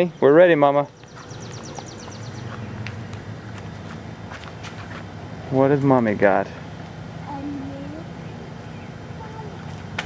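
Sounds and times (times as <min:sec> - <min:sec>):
bird trilling chirps: 0:00.0 - 0:03.1
light footsteps: 0:00.8 - 0:05.2.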